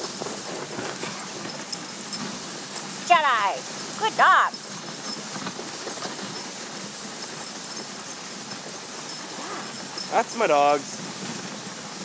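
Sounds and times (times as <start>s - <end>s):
dogs' running footfalls: 0.0s - 12.0s
sled runners scraping on snow: 0.0s - 12.0s.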